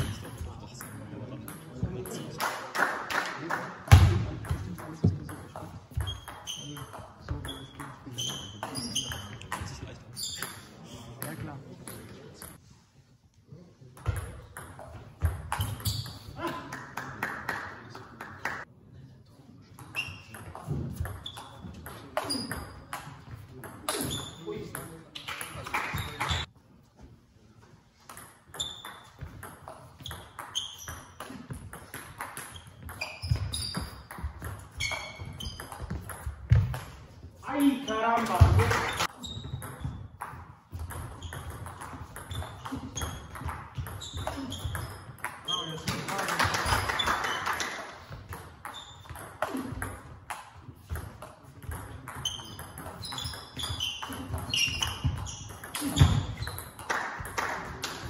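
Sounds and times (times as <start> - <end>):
table tennis ball hits: 28.1 - 37.0, 38.2 - 58.0.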